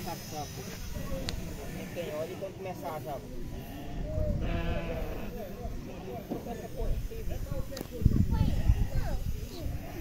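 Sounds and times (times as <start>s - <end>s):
faint background voices: 0.0s - 10.0s
goat bleating: 3.5s - 6.2s.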